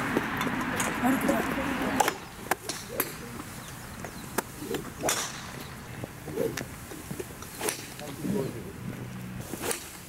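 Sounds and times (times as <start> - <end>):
golf club swishing: 2.0 - 8.7, 9.4 - 10.0.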